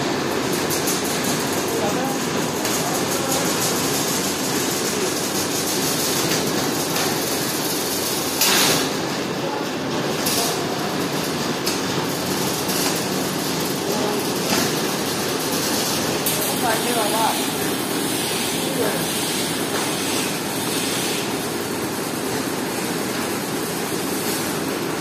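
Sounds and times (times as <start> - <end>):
machinery clatter: 0.0 - 25.0
machinery whirring: 0.0 - 25.0.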